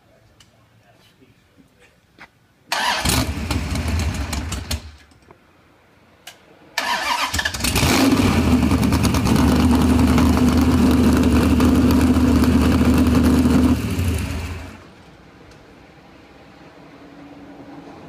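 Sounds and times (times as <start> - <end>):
engine starting and running: 2.7 - 5.2, 6.8 - 15.0.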